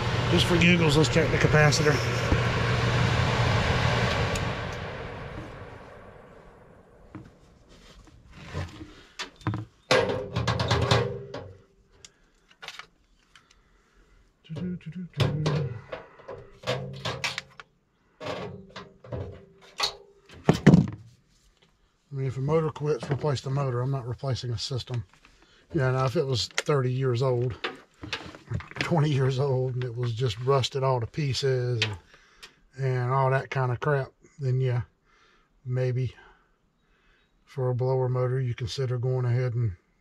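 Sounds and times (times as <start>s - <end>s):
blower motor hum and air rush: 0.0s - 7.7s.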